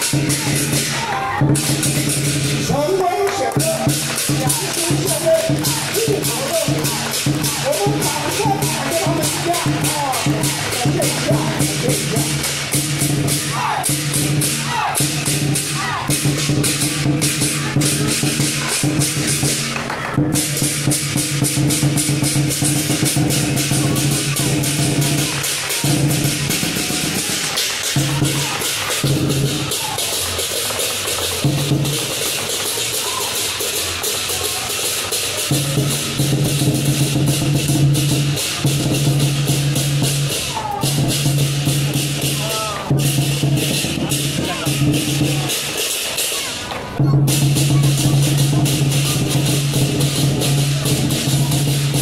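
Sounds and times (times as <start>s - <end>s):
fast cymbal clashing: 0.0s - 2.9s, 3.5s - 52.0s
drum beats: 0.0s - 52.0s
percussion band playing: 0.0s - 52.0s.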